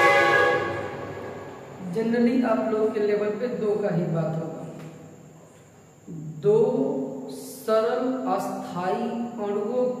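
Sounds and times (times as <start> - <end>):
loud horn-like tone: 0.0 - 1.8.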